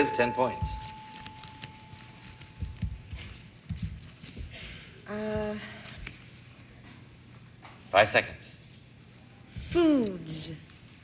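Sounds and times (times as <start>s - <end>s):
soft low thumps: 0.4s - 5.7s.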